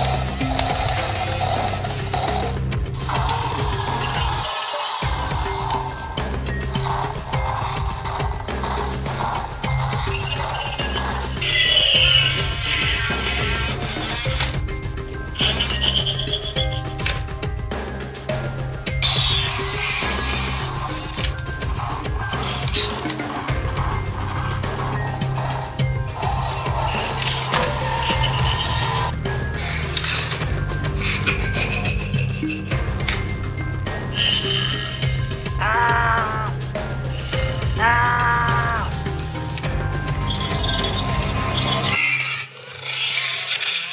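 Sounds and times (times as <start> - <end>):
background music: 0.0 - 43.6.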